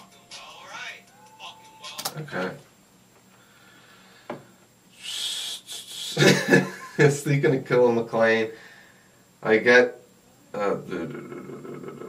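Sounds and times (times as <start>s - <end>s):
man talking: 10.6s - 11.4s.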